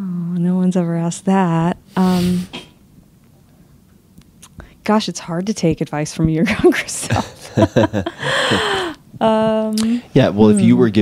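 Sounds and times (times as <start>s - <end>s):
woman speaking: 0.0s - 2.5s, 4.8s - 7.6s, 9.2s - 10.8s.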